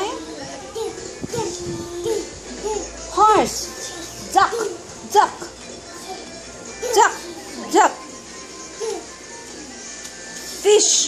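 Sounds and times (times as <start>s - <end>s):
toddler babbling: 0.0s - 3.0s, 8.8s - 9.1s
background music: 0.0s - 11.0s.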